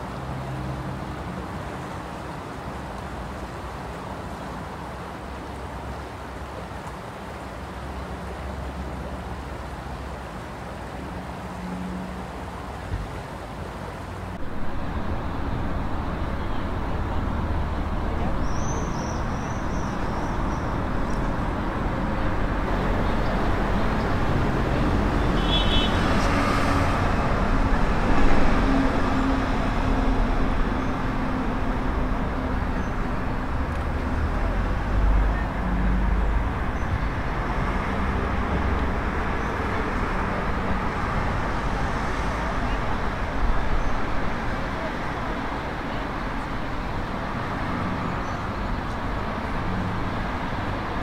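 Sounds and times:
steady traffic noise: 0.0s - 51.0s.

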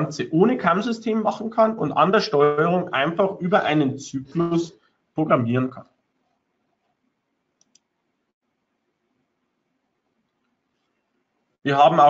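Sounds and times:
computer mouse clicks: 7.6s - 7.9s.

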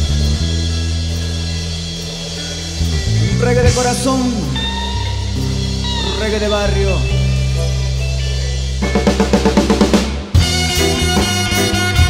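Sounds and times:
reggae band playing: 0.0s - 12.0s.

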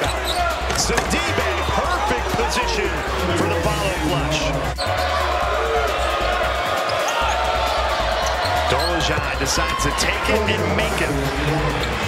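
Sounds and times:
sneakers squeaking on hardwood: 0.0s - 1.8s
arena music with bass line: 7.2s - 12.0s.

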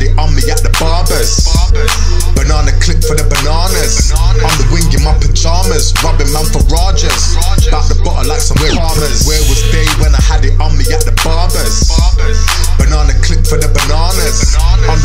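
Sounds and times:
rapping over a hip hop beat: 0.0s - 15.0s.

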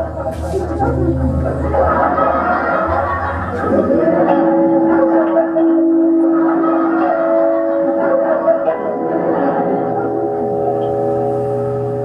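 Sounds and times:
electronic drone tones: 7.5s - 12.0s.

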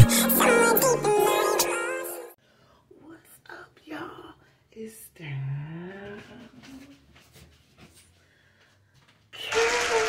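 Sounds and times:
woman whispering: 3.0s - 4.9s.

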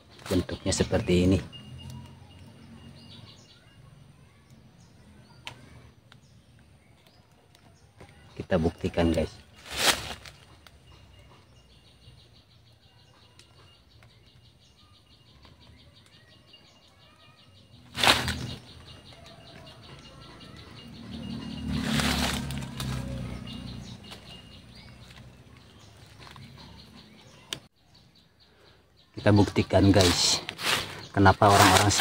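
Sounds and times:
leaves and stems rustling: 6.6s - 10.9s, 17.8s - 19.8s, 20.5s - 26.6s, 29.2s - 32.0s.

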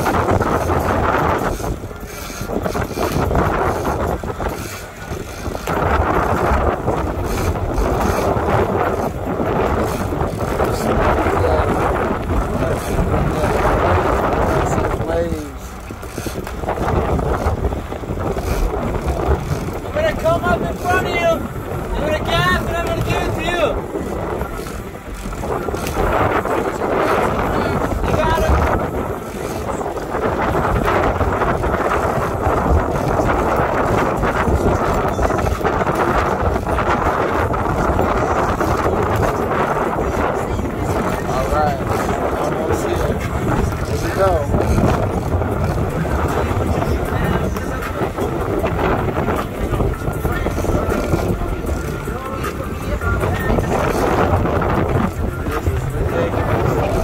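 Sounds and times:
boat engine running: 0.0s - 57.0s
wind buffeting microphone: 0.0s - 57.0s
indistinct voices: 4.3s - 57.0s.

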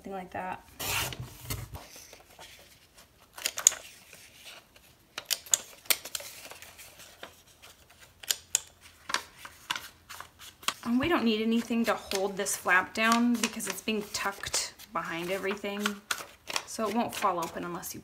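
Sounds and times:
paper being handled: 0.8s - 18.0s.

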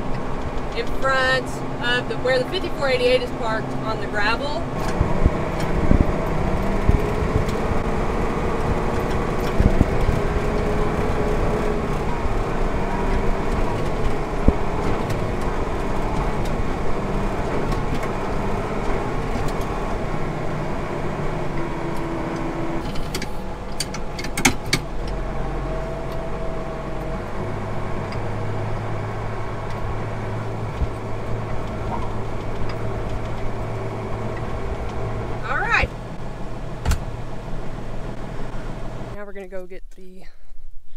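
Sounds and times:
tractor diesel engine running: 0.0s - 40.2s
sharp clicks or rattles: 21.6s - 25.2s.

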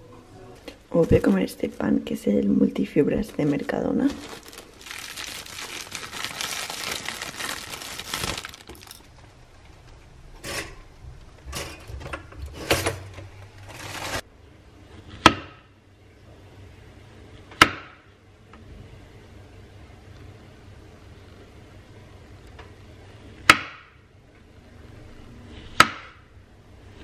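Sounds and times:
plastic bag crinkling: 3.3s - 9.2s.

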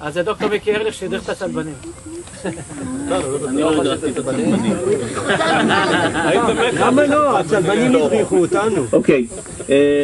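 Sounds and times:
people talking: 0.0s - 10.0s
steady high hiss: 0.0s - 10.0s.

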